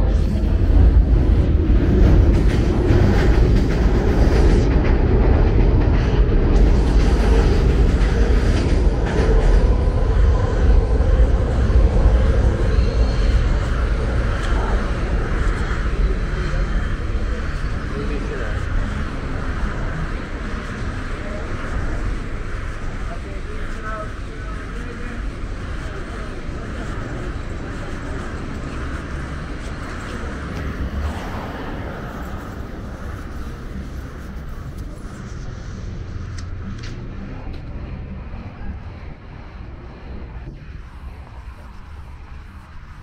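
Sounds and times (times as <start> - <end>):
elevated train rumbling on steel track: 0.0 - 43.0.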